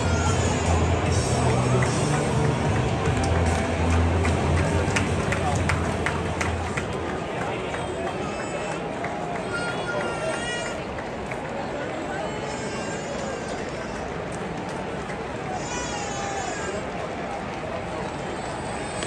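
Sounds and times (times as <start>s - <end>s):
high drawn-out shout: 0.0s - 1.9s
stadium pa music: 0.0s - 8.2s
people clapping: 0.0s - 18.2s
crowd voices: 0.0s - 19.0s.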